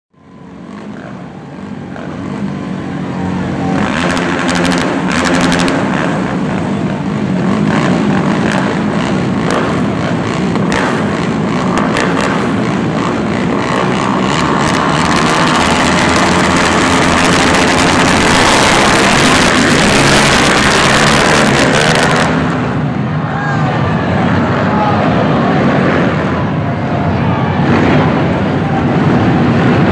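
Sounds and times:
quad engines revving: 0.2s - 23.2s, 27.6s - 29.9s.

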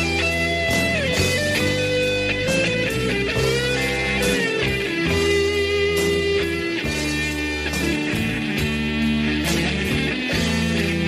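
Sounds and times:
lead electric guitar bends: 0.0s - 11.0s
rock ballad backing band: 0.0s - 11.0s.

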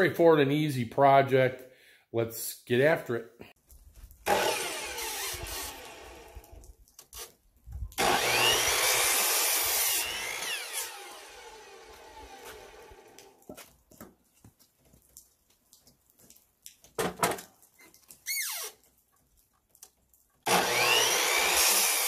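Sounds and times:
electric miter saw cutting wood: 4.2s - 7.3s, 8.0s - 13.4s, 20.4s - 22.0s
saw motor winding down: 4.3s - 6.6s, 8.0s - 13.4s, 20.5s - 22.0s.

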